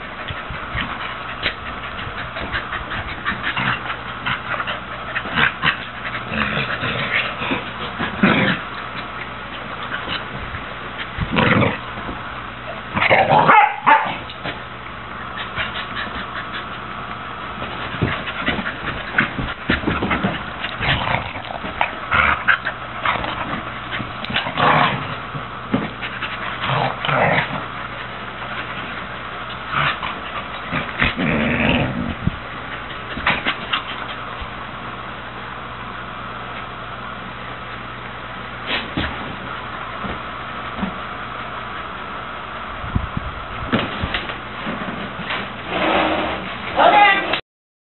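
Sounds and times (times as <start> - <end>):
dogs play-fighting vocal noises: 0.0 - 34.8.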